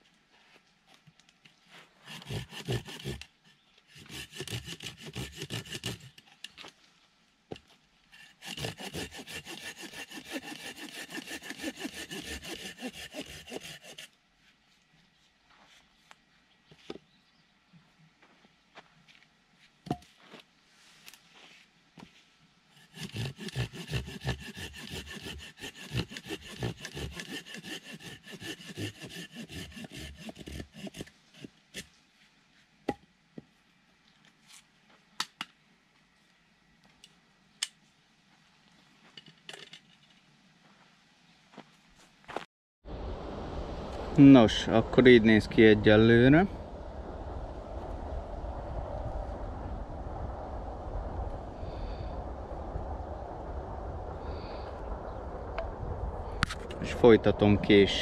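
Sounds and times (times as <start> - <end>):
hand saw cutting wood: 2.0 - 6.3, 8.1 - 14.2, 22.7 - 31.9.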